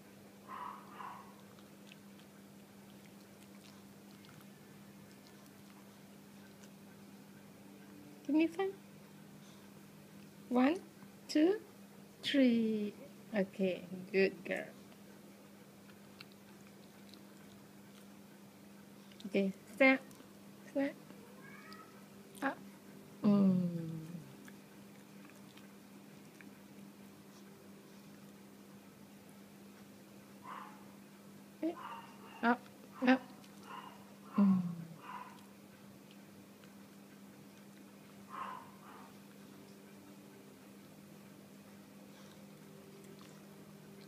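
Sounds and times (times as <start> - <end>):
steady low hum: 0.0 - 44.0
small dog chewing a treat: 1.3 - 7.2, 14.8 - 19.3, 24.2 - 28.4, 42.1 - 44.0
small dog whining: 21.2 - 22.0
dog vocal sound: 31.6 - 40.5.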